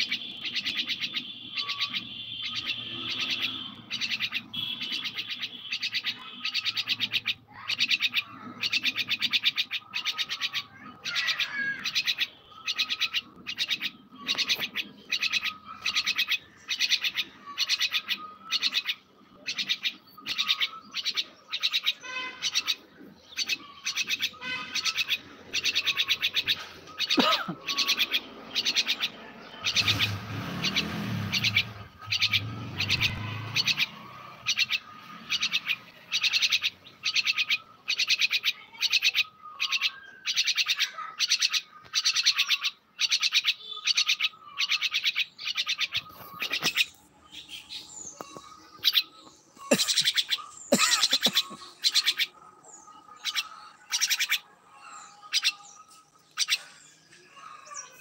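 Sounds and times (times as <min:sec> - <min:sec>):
myna calling: 0:00.0 - 0:58.0.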